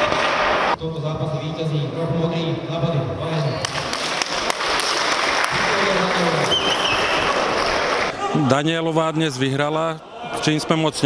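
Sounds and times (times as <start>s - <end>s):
audience applauding: 3.7s - 8.1s.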